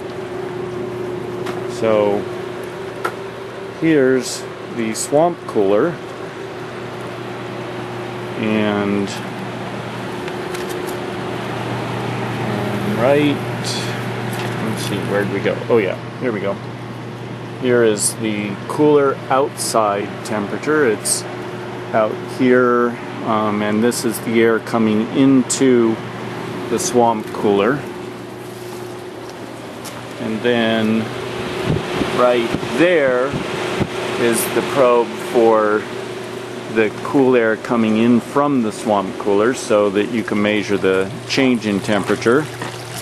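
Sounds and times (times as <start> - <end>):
cooler fan rushing: 0.0 - 43.0
low motor hum: 0.0 - 43.0.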